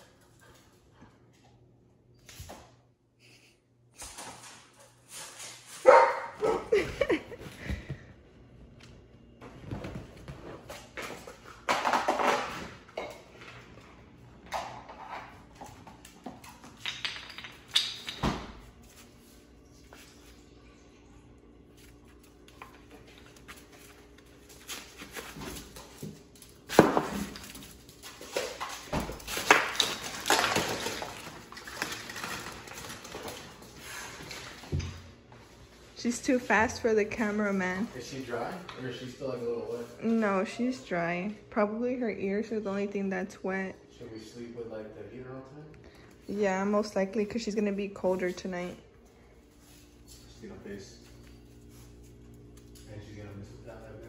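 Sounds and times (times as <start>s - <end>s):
puppy barking and yipping: 5.9s - 6.7s.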